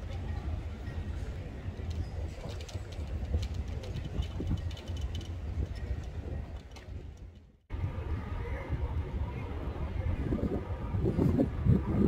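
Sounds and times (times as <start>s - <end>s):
wind buffeting microphone: 0.0s - 12.0s
faint voices: 7.7s - 12.0s.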